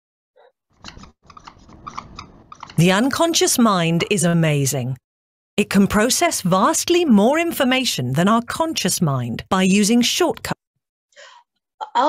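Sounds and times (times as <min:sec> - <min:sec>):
marker pen scratching: 0:00.8 - 0:02.8
narrator speaking: 0:02.8 - 0:05.0, 0:05.6 - 0:10.6.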